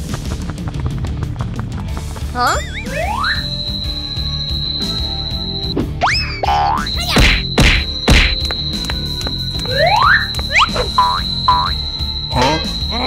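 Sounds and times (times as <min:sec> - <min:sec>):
background music: 0:00.0 - 0:13.0
high-pitched tone: 0:02.4 - 0:13.0
hard whacks: 0:07.0 - 0:08.5.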